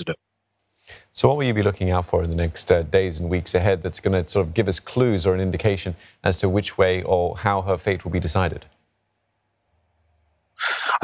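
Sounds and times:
man speaking: 0:00.0 - 0:00.2, 0:01.2 - 0:08.7.

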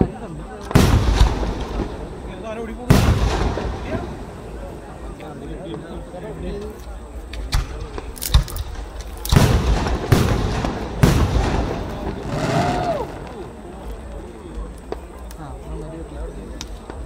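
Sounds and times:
firework crackle: 0:00.5 - 0:05.8, 0:07.3 - 0:17.0
firework shells bursting: 0:00.6 - 0:04.6, 0:07.3 - 0:14.1.

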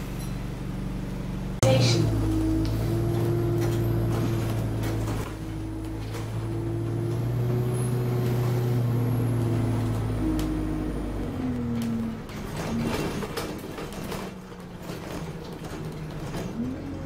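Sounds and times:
bus diesel engine humming: 0:00.0 - 0:17.0
faint rattles and clicks: 0:11.6 - 0:17.0.

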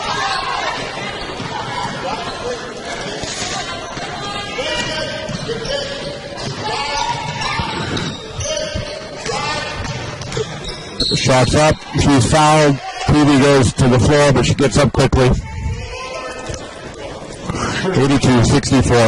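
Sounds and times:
echoing voices: 0:00.0 - 0:19.0.

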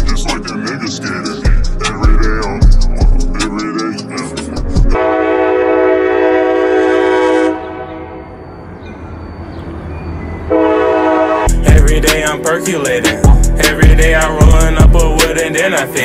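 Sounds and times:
train low rumble: 0:00.0 - 0:15.8
locomotive air horn blasts: 0:05.0 - 0:08.4, 0:10.5 - 0:11.8.

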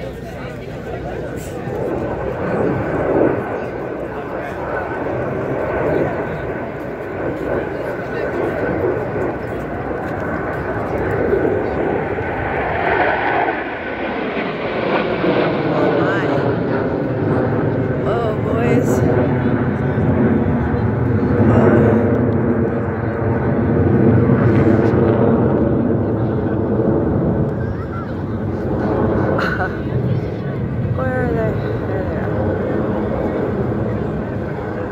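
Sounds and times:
crowd voices: 0:00.0 - 0:34.9
jet aircraft flying overhead: 0:00.0 - 0:34.9.

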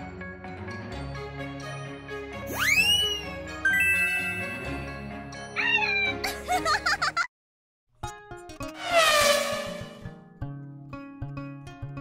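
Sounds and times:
background music: 0:00.0 - 0:07.3.

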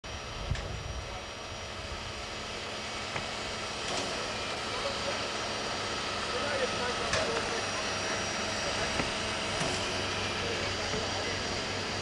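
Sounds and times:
locomotive low rumble: 0:00.0 - 0:12.0
steam hissing: 0:01.3 - 0:12.0.

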